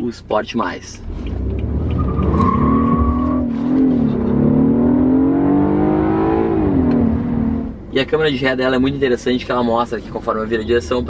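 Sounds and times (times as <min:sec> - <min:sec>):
car engine accelerating hard: 0:01.0 - 0:07.8.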